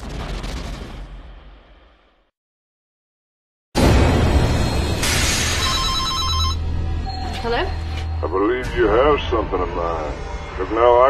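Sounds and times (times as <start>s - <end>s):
loud hit: 3.8s - 5.8s
telephone ringing trill: 5.6s - 6.7s.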